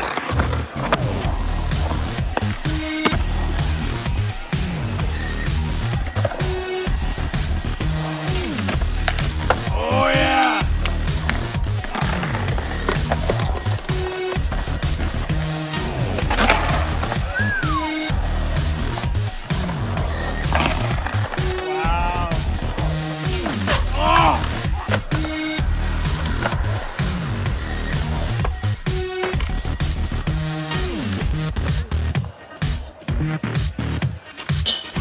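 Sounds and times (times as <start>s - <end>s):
skateboard clacks: 0.0s - 35.0s
skateboard wheels rolling on concrete: 0.0s - 35.0s
music with repeating bass: 0.4s - 34.2s.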